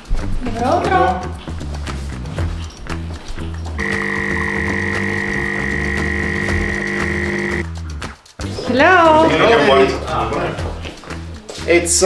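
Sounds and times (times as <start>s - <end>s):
espresso machine pump buzzing: 3.8s - 7.6s.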